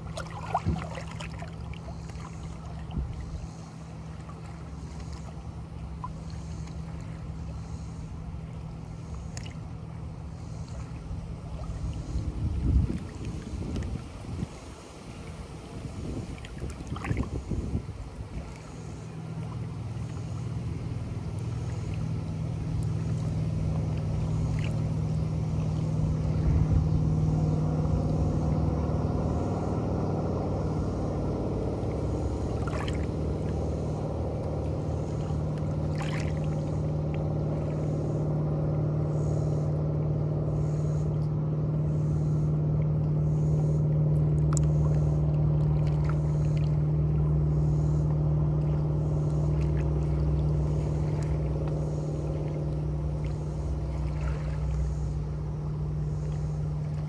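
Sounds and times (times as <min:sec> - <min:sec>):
water lapping against rocks: 0:00.0 - 0:26.7, 0:31.7 - 0:39.7, 0:40.6 - 0:57.0
motorboat engine droning: 0:00.0 - 0:57.0
small water splashes: 0:00.0 - 0:57.0.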